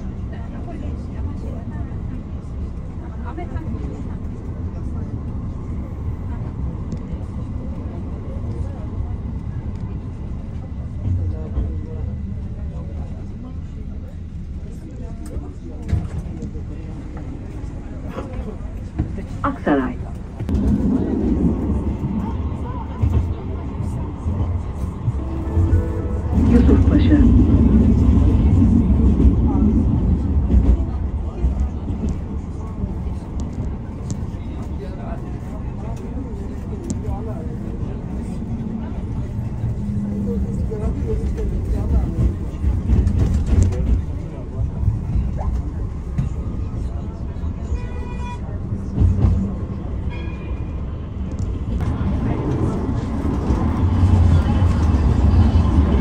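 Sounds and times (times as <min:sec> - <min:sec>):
tram rumbling on rails: 0:00.0 - 0:56.0.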